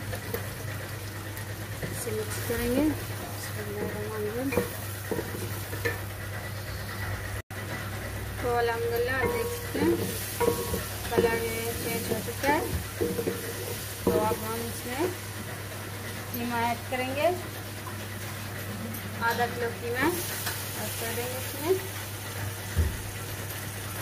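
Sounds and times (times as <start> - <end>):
food sizzling in oil: 0.0 - 24.0
spatula scraping a pot: 2.0 - 7.1, 9.0 - 15.2.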